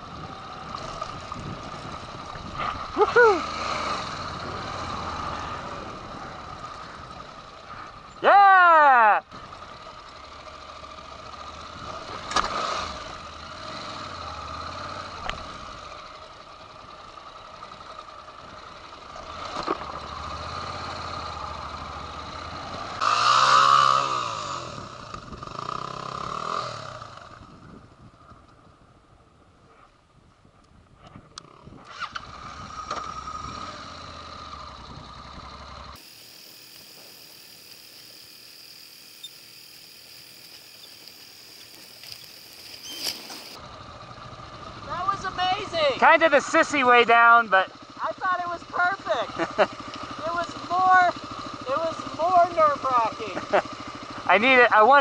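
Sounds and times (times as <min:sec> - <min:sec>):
motorcycle engine running: 0:00.0 - 0:29.4, 0:30.8 - 0:55.0
steady hiss: 0:36.0 - 0:43.6.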